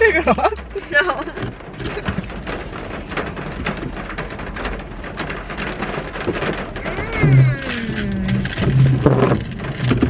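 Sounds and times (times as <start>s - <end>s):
rain pattering on car roof: 0.0s - 10.0s.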